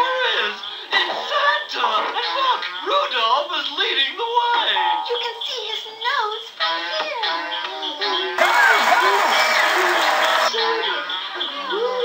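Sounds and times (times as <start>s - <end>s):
cartoon soundtrack music: 8.4s - 10.5s
cartoon voices: 8.4s - 10.5s
gliding singing-like voice: 8.4s - 10.9s.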